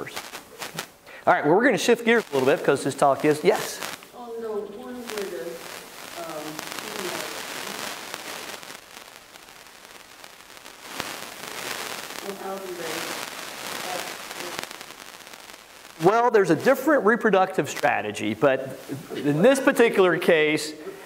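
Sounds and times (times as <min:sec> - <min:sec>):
crackling hiss: 0:00.0 - 0:21.0.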